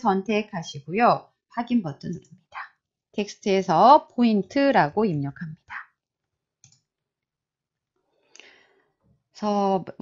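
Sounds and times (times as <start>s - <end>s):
computer mouse click: 6.6s - 6.9s.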